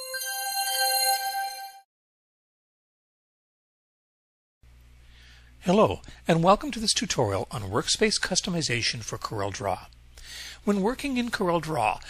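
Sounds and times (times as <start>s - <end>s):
chiming bell-like jingle: 0.0s - 1.8s.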